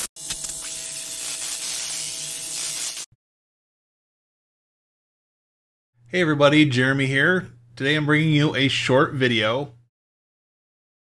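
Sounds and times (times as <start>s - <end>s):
neon sign buzzing: 0.0s - 3.1s
faint hum: 6.0s - 9.9s.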